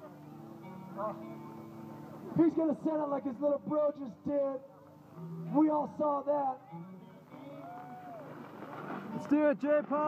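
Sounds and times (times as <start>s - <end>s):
low outdoor noise: 0.0s - 10.0s.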